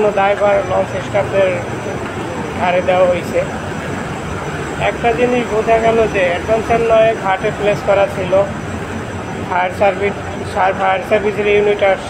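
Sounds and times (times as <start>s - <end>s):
low mechanical drone: 0.0s - 12.0s
voices talking: 0.0s - 12.0s.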